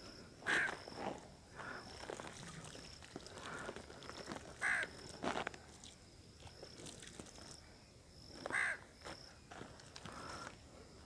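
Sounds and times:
crow cawing: 4.6 - 4.9, 8.5 - 8.8.

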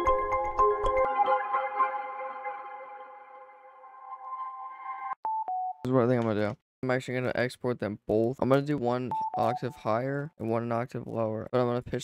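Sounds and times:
person speaking: 5.8 - 12.0.

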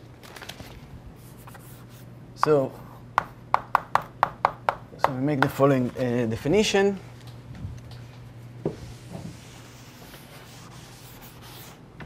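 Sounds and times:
chalk tapping and scraping on blackboard: 9.2 - 11.8.

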